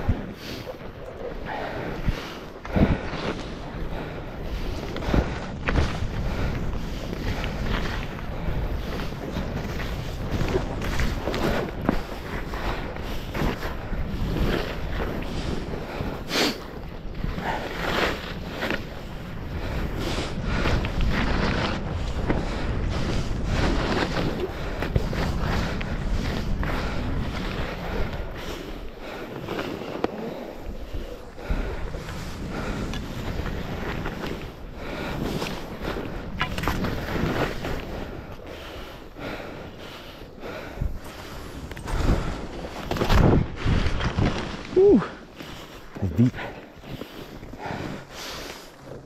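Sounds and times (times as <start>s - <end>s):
skis scraping through snow: 0.0s - 49.0s
wind rushing over microphone: 0.0s - 49.0s.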